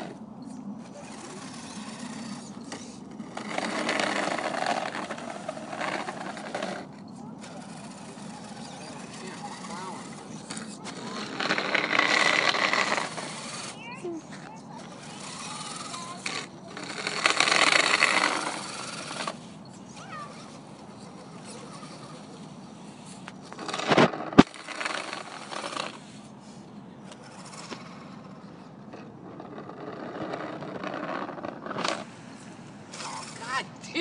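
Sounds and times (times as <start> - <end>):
plow scraping rush: 0.0 - 34.0
toy truck motor running: 0.0 - 34.0.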